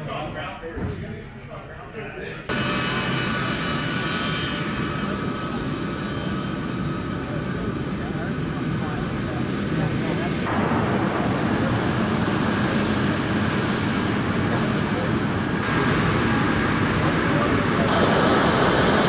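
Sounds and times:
jet engines roaring: 0.0 - 19.0.

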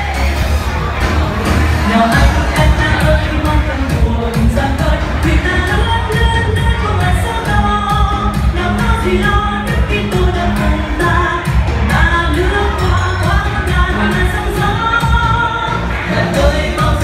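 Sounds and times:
upbeat pop song with singer: 0.0 - 17.0.

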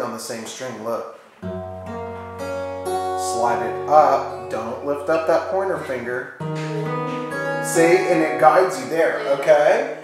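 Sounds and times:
acoustic guitar chord strummed: 1.4 - 10.0.

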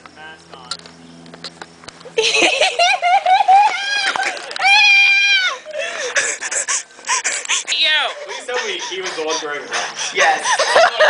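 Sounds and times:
young people yelping and whimpering: 2.2 - 11.0
breathy hisses: 5.7 - 10.8.

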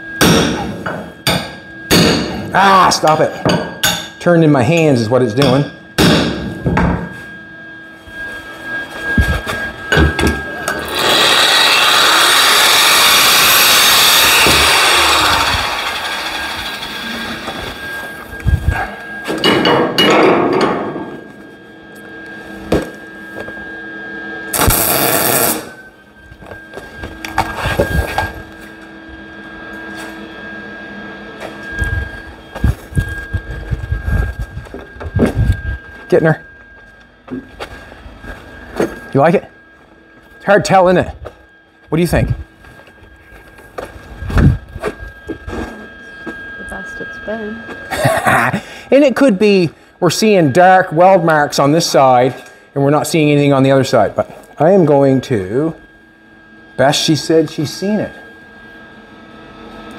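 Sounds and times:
welding crackle: 24.5 - 25.8.

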